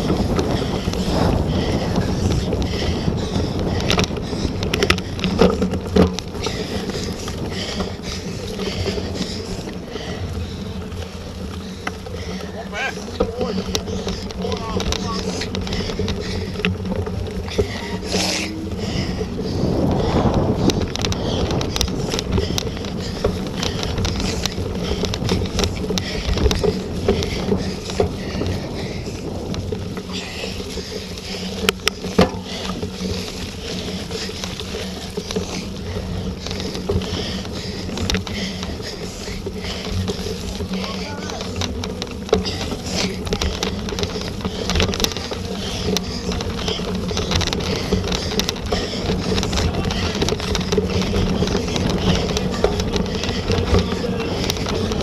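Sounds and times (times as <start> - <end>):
tyres and wind rumble: 0.0 - 55.0.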